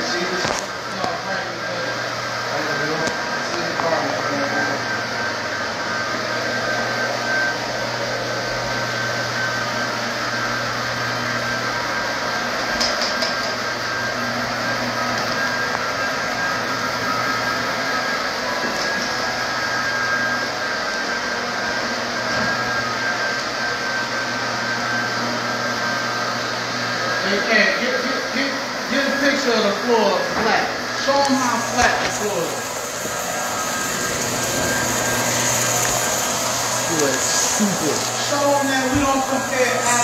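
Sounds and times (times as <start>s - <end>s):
floor machine motor drone: 0.0s - 40.0s
thin high whine: 27.2s - 40.0s.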